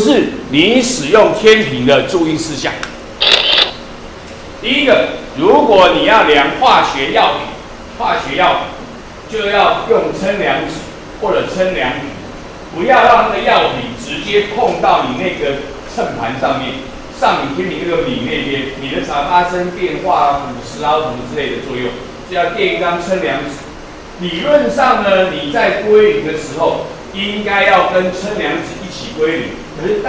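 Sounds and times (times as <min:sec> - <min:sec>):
man lecturing: 0:00.0 - 0:02.9, 0:04.6 - 0:30.0
short hiss: 0:03.2 - 0:03.8.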